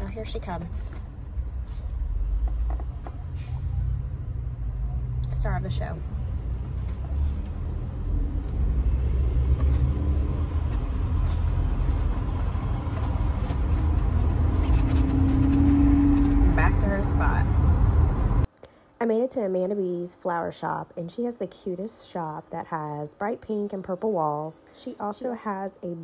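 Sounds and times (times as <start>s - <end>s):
engine and road rumble: 0.0s - 18.5s
low hum: 0.0s - 18.5s.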